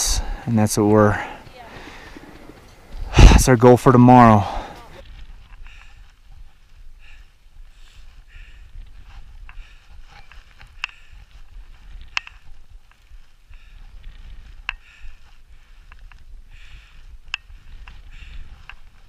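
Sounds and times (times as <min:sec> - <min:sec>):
metal climbing gear clinking: 0:10.0 - 0:11.3.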